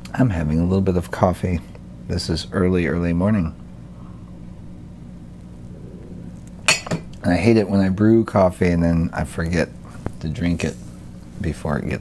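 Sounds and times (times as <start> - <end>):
steady low hum: 0.0 - 12.0
coffee cup clinking: 6.6 - 7.2.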